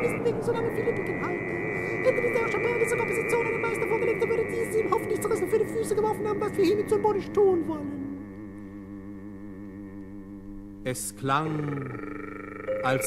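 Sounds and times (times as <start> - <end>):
man singing warbling vocals: 0.0 - 13.0
steady high held tone: 0.0 - 13.0.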